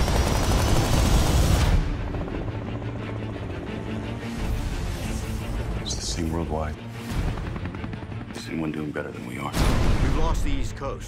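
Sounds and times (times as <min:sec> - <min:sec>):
helicopter rotor beating: 0:00.0 - 0:09.5.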